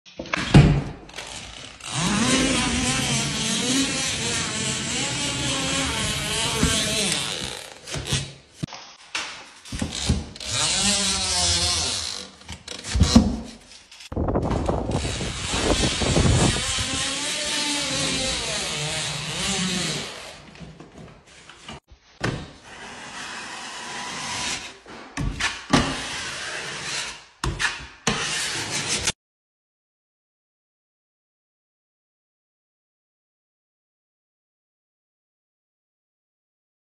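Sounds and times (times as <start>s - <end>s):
drywall taper rubbing and scraping: 0.2s - 29.2s.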